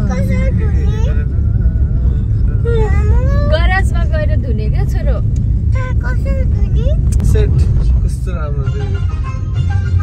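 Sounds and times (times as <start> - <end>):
car road and engine rumble: 0.0 - 10.0
people talking: 1.9 - 9.1.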